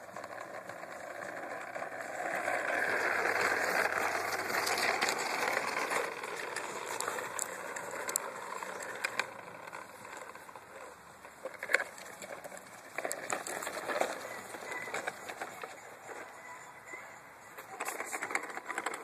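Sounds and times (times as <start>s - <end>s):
toy lawn mower rattling: 0.0s - 19.0s.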